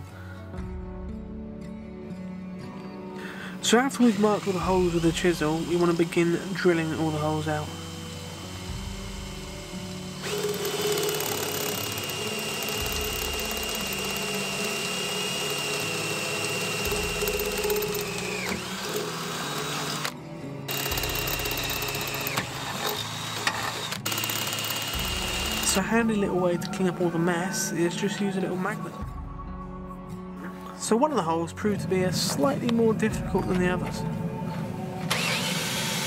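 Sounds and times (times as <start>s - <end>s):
background music with bass line: 0.0s - 23.3s, 24.9s - 35.1s
cordless drill boring through steel: 3.6s - 25.9s, 35.1s - 36.0s.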